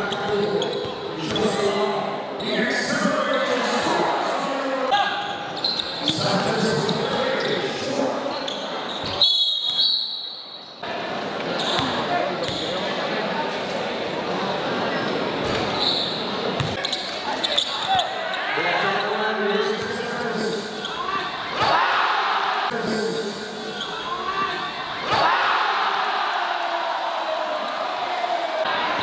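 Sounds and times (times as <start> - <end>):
referee whistle: 9.0 - 10.8
crowd chatter: 10.7 - 29.0.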